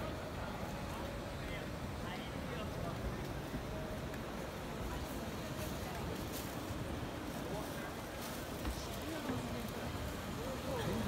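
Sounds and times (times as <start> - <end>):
crowd chatter: 0.0 - 11.0
low urban rumble: 0.0 - 11.0.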